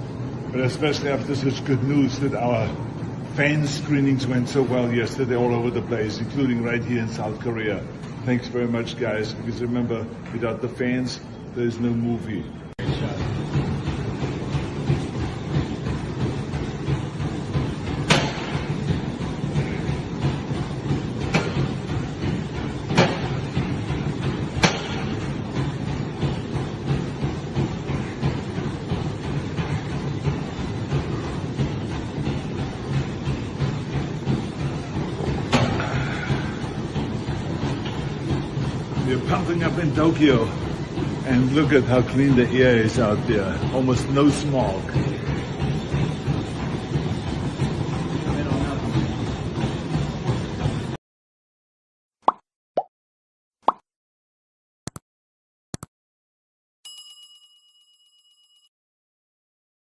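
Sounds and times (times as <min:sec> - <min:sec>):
exercise machine rumble and clatter: 0:00.0 - 0:51.0
notification bell ringing with trill: 0:56.9 - 0:58.7.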